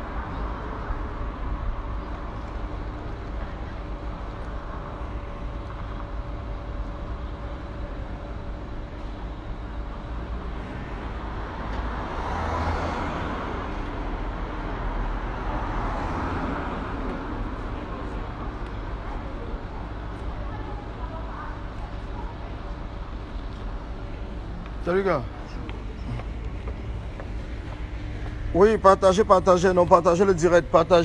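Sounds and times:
low traffic rumble: 0:00.0 - 0:31.0
vehicle passing close: 0:11.2 - 0:17.5.

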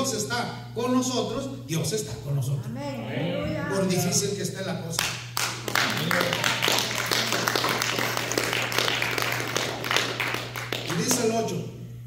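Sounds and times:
steady low hum: 0:00.0 - 0:12.0
congregation clapping: 0:05.0 - 0:11.6.

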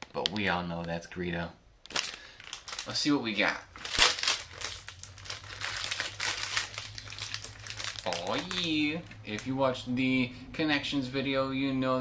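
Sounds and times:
wrapper tearing and crinkling: 0:01.9 - 0:09.5.

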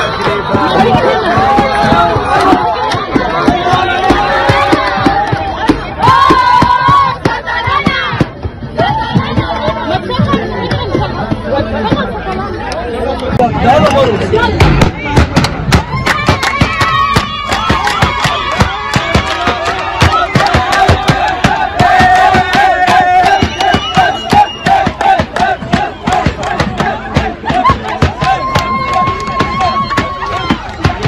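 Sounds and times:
crowd singing and chanting: 0:00.0 - 0:31.0
frame drums: 0:14.4 - 0:31.0
clapping: 0:15.4 - 0:31.0.

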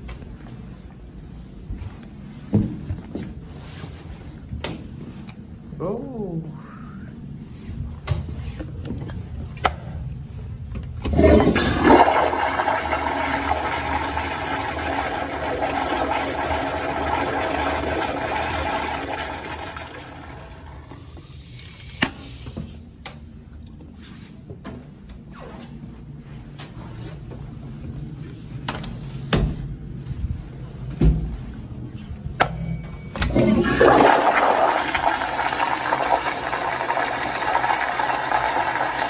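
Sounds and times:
toilet flushing: 0:11.0 - 0:22.0, 0:33.3 - 0:39.0.

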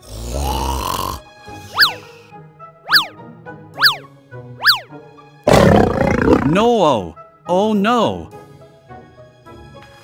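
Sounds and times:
cartoon background music: 0:00.1 - 0:10.0
whistle sound effect: 0:01.7 - 0:02.1, 0:02.9 - 0:03.2, 0:03.8 - 0:04.9
lion roar sound effect: 0:05.5 - 0:06.7.

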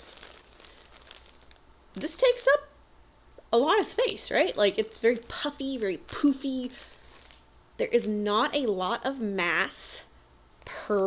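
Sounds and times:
plastic bag crinkling: 0:00.0 - 0:02.5, 0:03.7 - 0:07.5.

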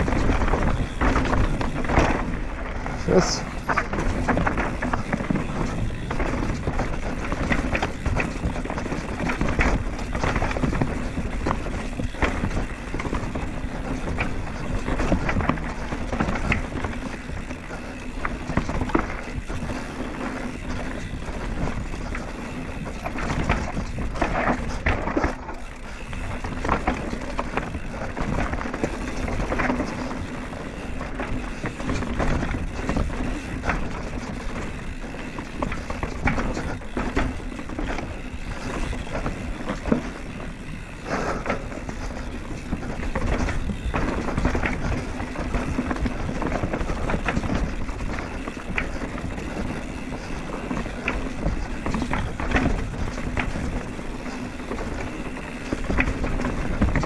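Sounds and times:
bike tyres rumbling over dirt: 0:00.0 - 0:57.0
wind noise on microphone: 0:00.0 - 0:57.0.

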